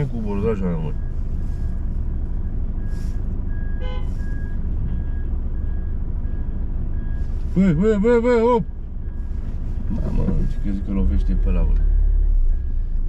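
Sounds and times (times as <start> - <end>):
parking sensor beeps: 0.0 - 11.7
car engine running: 0.0 - 13.0.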